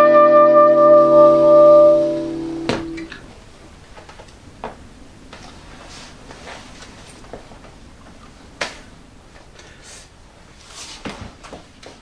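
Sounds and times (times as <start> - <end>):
acoustic guitar chord: 0.0 - 3.1
soprano saxophone note: 0.0 - 3.2.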